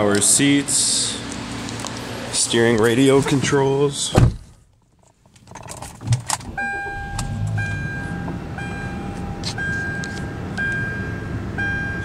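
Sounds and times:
car engine starting and idling: 0:00.0 - 0:12.0
ignition clicks: 0:05.3 - 0:10.9
dashboard warning chime: 0:06.5 - 0:12.0.

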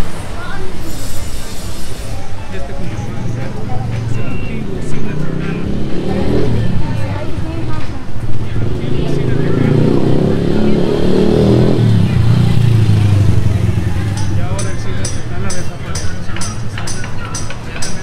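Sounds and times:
people's voices: 0:00.0 - 0:18.0
vehicle engine running: 0:01.4 - 0:17.0.

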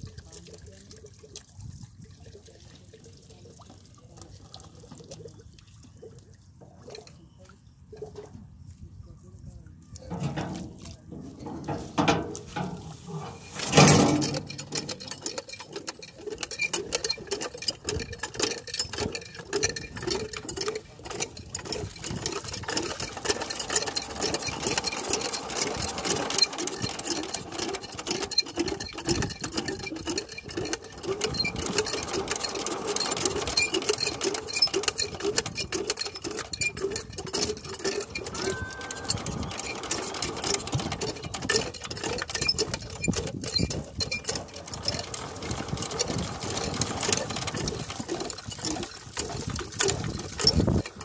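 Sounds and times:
diesel pump engine clattering: 0:10.1 - 0:51.0.

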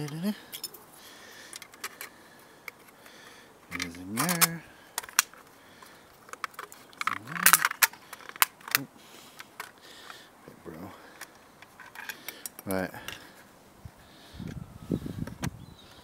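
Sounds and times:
man humming: 0:00.0 - 0:00.5, 0:07.1 - 0:07.7
plastic toy parts clicking: 0:01.5 - 0:09.8.

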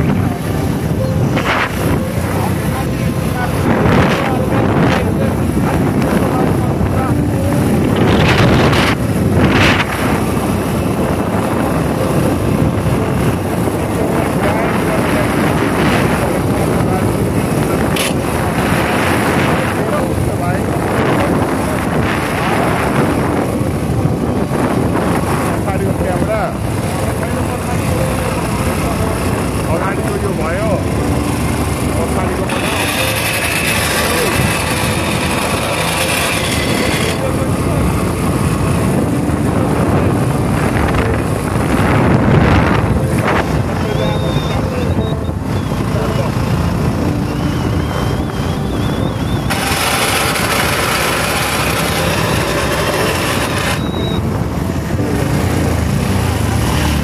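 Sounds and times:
motorcycle engine running: 0:00.0 - 0:57.0
wind on microphone: 0:00.0 - 0:57.0.

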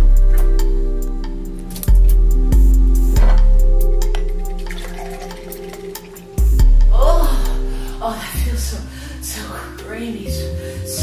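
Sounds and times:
milk pouring into a glass: 0:04.5 - 0:06.6.

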